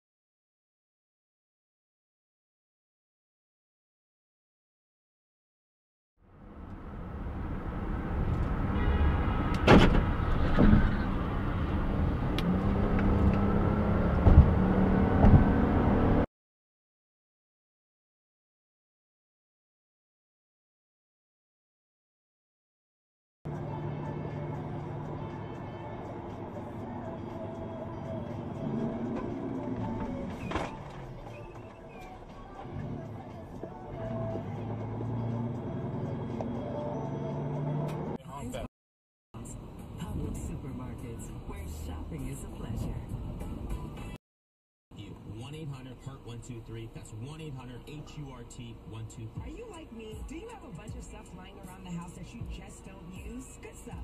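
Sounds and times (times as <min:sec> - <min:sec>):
car engine rumble: 0:06.2 - 0:16.3, 0:23.5 - 0:38.7, 0:39.4 - 0:44.2
truck cab noise while driving: 0:06.3 - 0:16.3, 0:23.5 - 0:38.6
background music: 0:23.5 - 0:38.6.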